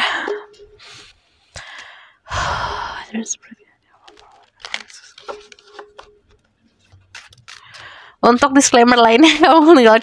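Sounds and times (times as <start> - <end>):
person sighing: 1.6 - 3.1.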